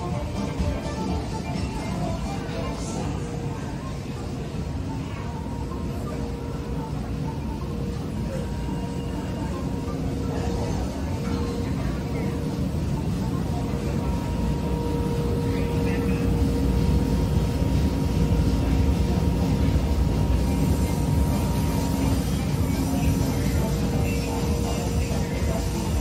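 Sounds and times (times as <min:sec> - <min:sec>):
machinery drone: 0:00.0 - 0:26.0
people chattering: 0:00.0 - 0:26.0.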